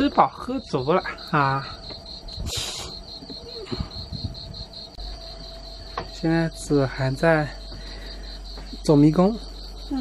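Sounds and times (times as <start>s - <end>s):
high-pitched insect chirping: 0.0s - 10.0s.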